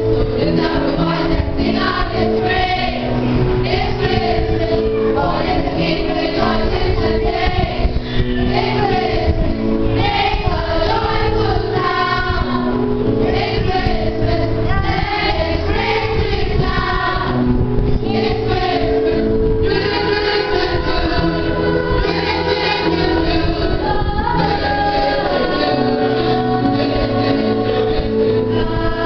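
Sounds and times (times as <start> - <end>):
children's choir singing a carol: 0.0 - 29.0
held accompaniment chords: 0.0 - 29.0.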